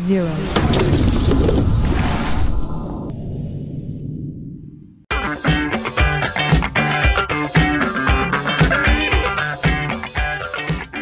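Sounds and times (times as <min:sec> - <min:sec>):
intro music with a beat: 0:05.1 - 0:11.0.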